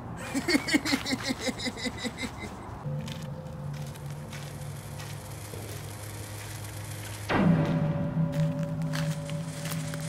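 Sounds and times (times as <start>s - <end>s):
low droning hum: 2.7s - 10.0s.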